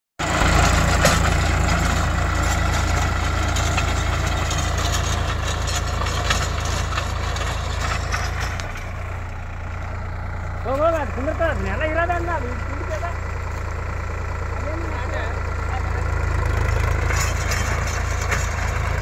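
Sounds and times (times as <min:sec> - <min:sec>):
tractor diesel engine running: 0:00.2 - 0:19.0.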